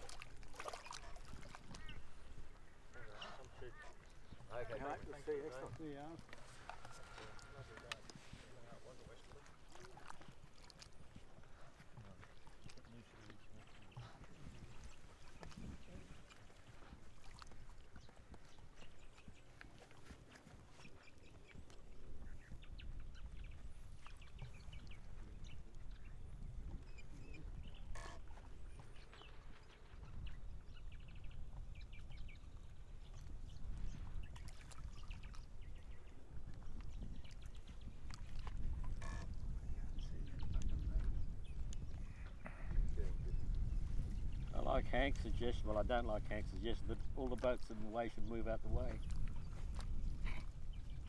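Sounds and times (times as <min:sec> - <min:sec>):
wind rumbling on microphone: 0:09.8 - 0:51.0.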